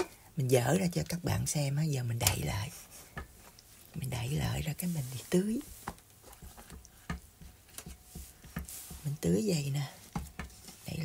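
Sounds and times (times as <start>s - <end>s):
cloth towel rustling: 2.4s - 11.0s.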